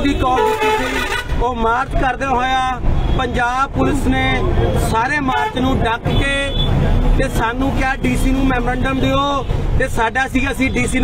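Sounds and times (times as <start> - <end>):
vehicle rumble: 0.0 - 11.0.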